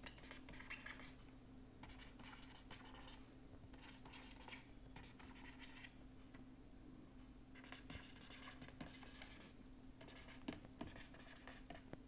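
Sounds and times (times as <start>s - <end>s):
stylus scratching on tablet: 0.0s - 1.2s, 1.8s - 6.0s, 7.6s - 12.0s
low steady hum: 0.0s - 12.0s.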